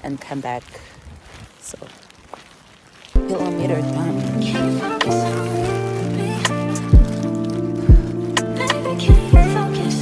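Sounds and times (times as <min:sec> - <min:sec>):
faint scuffs and rustles: 0:00.3 - 0:03.8.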